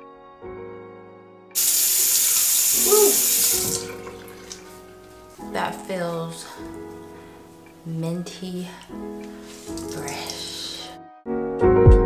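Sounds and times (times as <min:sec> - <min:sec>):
soft background music: 0:00.0 - 0:12.0
tap water running and splashing: 0:01.6 - 0:05.4, 0:09.3 - 0:10.9.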